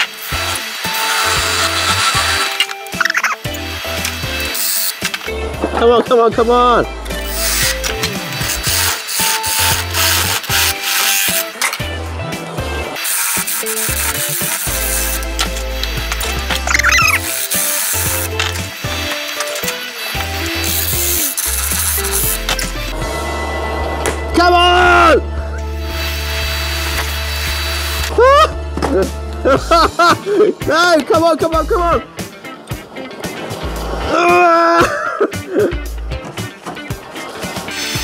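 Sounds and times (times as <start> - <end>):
wood lathe gouge cutting hiss: 0.0 - 5.4, 6.0 - 11.8, 12.9 - 24.4, 25.6 - 28.2, 37.2 - 38.0
background music: 0.0 - 38.0.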